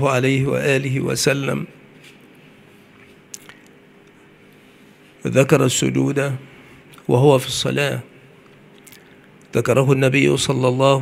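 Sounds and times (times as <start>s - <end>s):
mouth click: 3.3s - 3.8s, 8.8s - 9.5s.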